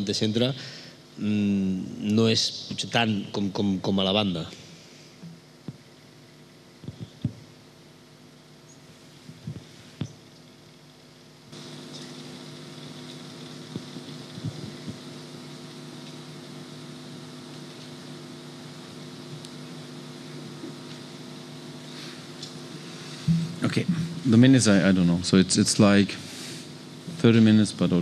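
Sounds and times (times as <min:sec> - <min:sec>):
electrical hum and hiss: 0:00.0 - 0:28.0.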